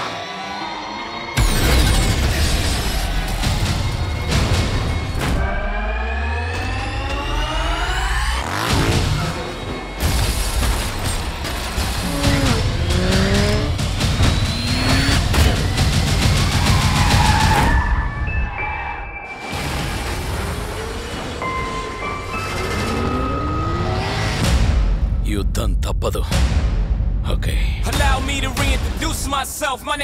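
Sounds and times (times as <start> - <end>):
action trailer music: 0.0 - 30.0
engines revving: 4.2 - 17.5, 20.0 - 24.8
tyres skidding: 6.1 - 17.6.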